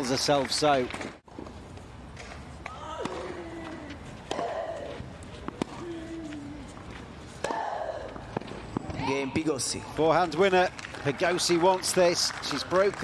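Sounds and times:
racket striking tennis ball: 4.2s - 5.8s, 7.4s - 9.0s.

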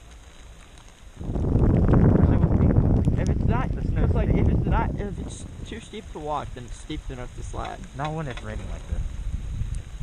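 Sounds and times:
wind buffeting microphone: 1.0s - 10.0s.

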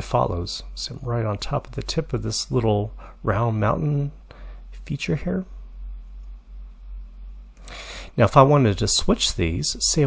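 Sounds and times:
low electrical hum: 0.0s - 10.0s
faint breath: 3.0s - 3.2s, 4.3s - 4.7s, 7.6s - 8.2s.

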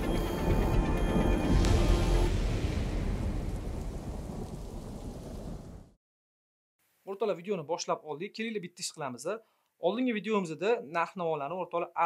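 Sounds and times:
low thunder rumble: 1.1s - 6.0s
rain-like hiss: 1.4s - 6.0s.

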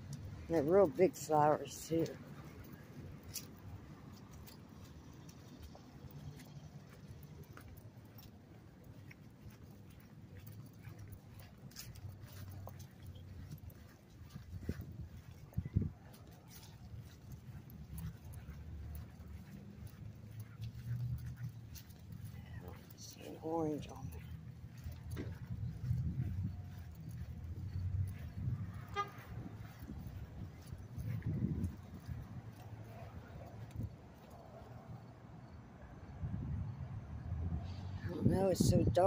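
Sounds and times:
footsteps on grass: 2.0s - 33.0s.

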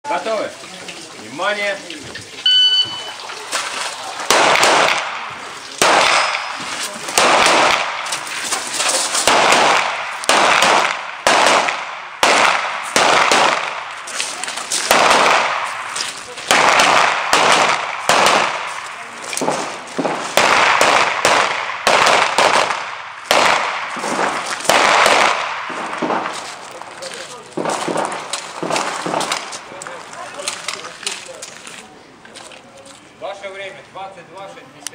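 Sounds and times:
shot timer beep: 2.4s - 3.2s
pistol shots: 4.3s - 8.2s, 9.1s - 14.0s, 14.8s - 26.5s, 27.6s - 29.6s.

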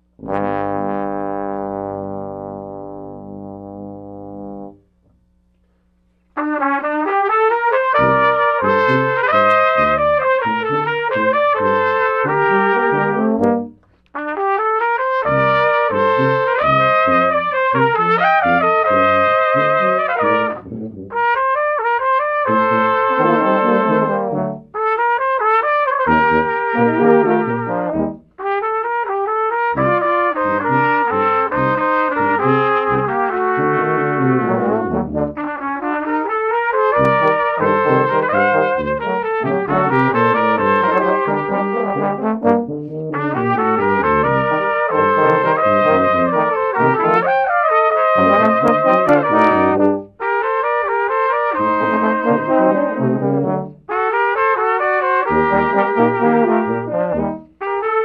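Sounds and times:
brass quintet playing: 0.0s - 5.0s, 6.3s - 58.0s.

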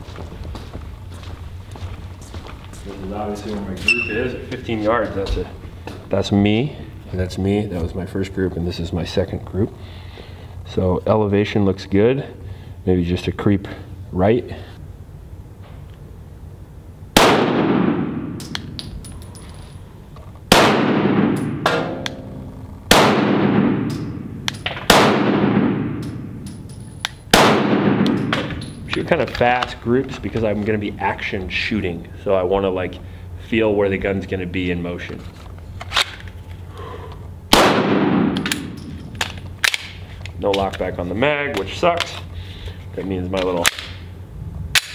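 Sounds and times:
pistol shots echoing: 17.2s - 18.8s, 20.5s - 26.7s, 27.3s - 28.9s, 37.5s - 39.0s.

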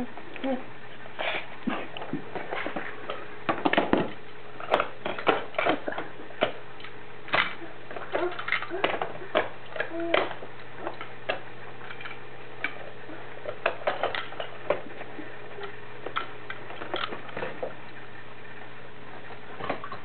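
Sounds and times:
plastic toys clacking together: 7.3s - 12.8s, 15.6s - 17.6s.

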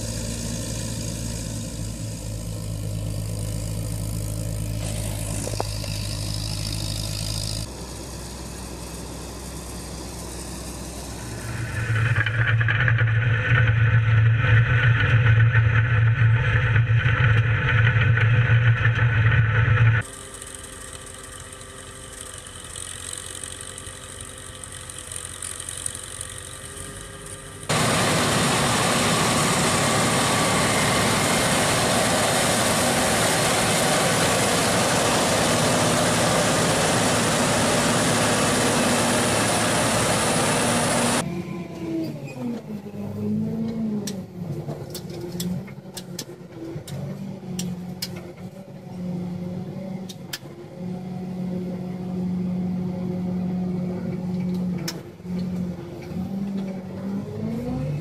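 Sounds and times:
farm machinery engine humming: 0.0s - 41.3s
cotton picker harvesting: 0.1s - 7.8s, 9.0s - 49.0s.

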